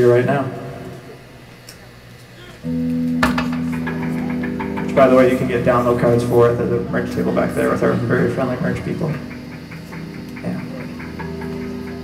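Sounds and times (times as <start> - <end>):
amplified note holding: 2.6 - 12.0
electric guitar chord ringing: 2.6 - 12.0.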